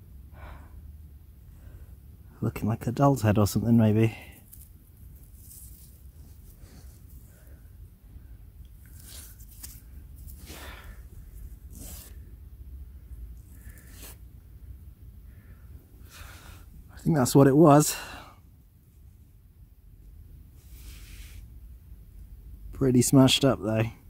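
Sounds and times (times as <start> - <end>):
low steady rumble: 0.0 - 24.0
fingers scraping soil off doll: 8.6 - 12.3, 13.4 - 14.2.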